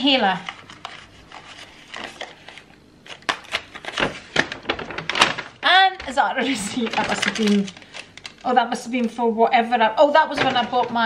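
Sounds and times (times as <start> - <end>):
paper bag rustling: 0.3 - 8.5.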